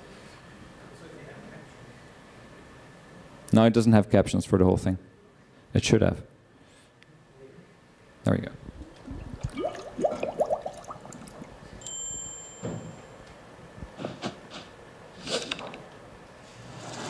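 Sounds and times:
chime strikes: 11.8s - 13.2s.

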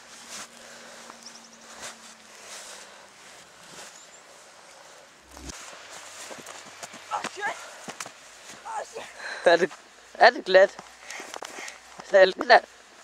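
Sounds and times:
footsteps in snow: 0.0s - 9.0s
gloved hand brushing snow: 1.6s - 9.0s
short vocal sounds: 5.2s - 5.6s.

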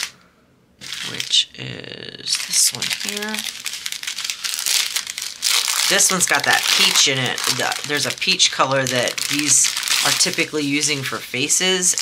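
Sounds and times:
plastic packaging crinkling: 0.8s - 1.6s, 2.2s - 12.0s.

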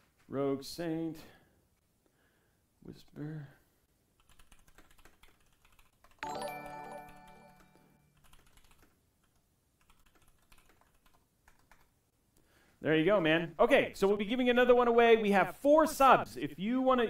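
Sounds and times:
keyboard typing: 4.2s - 11.9s
notification chime: 6.2s - 8.0s.

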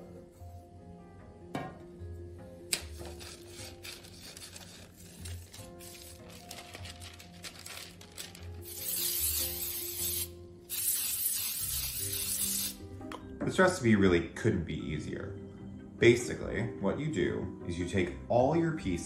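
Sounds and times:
background music: 0.0s - 19.0s
aerosol spray hissing: 8.6s - 12.8s.

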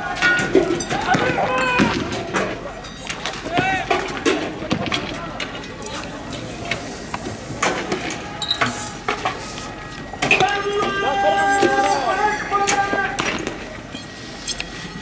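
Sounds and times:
men shouting: 0.0s - 2.2s, 10.2s - 13.3s
steady held pitched tone: 5.6s - 15.0s.

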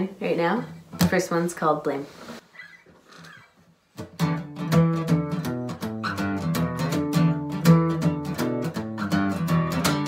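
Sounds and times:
acoustic guitar strummed: 4.0s - 10.0s.

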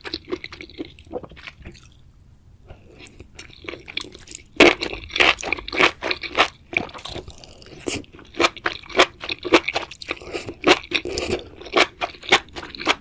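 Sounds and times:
crisp chewing crunches: 0.0s - 2.0s, 2.9s - 13.0s.

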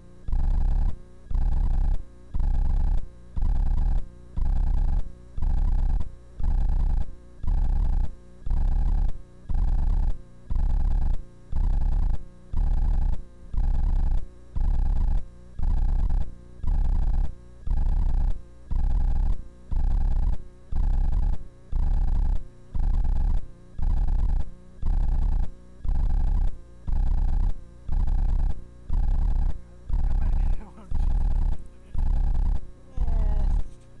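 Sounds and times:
loud pulsing buzz: 0.0s - 34.0s.

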